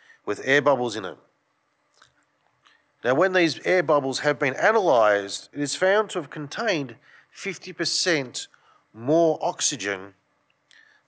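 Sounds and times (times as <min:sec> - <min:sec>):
man speaking: 0:00.3 - 0:01.2, 0:03.0 - 0:10.2.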